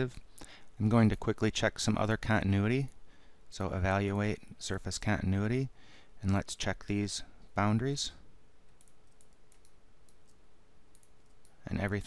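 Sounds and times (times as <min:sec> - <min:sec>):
faint steady hum: 0:00.0 - 0:12.0
computer mouse clicks: 0:08.7 - 0:11.6.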